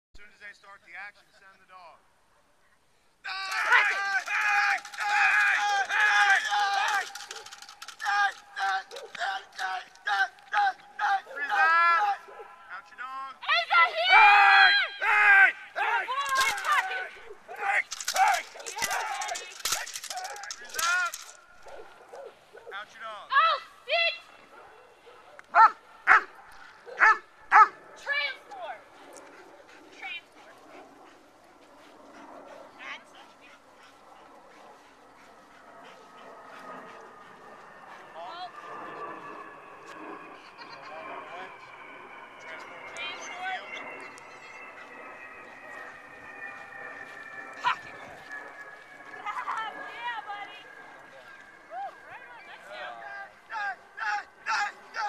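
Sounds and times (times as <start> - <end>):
voices: 2.6 - 21.4, 40.2 - 55.0
dog barking: 12.2 - 12.6, 21.6 - 22.8, 24.6 - 27.8
faint steady tone: 28.8 - 55.0.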